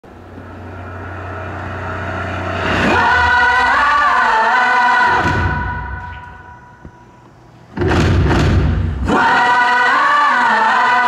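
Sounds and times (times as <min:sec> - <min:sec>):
low rumbling music: 0:00.0 - 0:10.2
sustained chord of voices: 0:00.1 - 0:07.2, 0:08.9 - 0:11.0.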